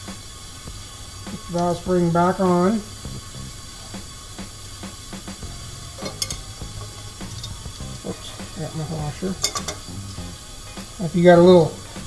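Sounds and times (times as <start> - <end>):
compressed air hissing: 0.0 - 12.0
metal tools clinking: 6.0 - 7.6, 8.2 - 9.9.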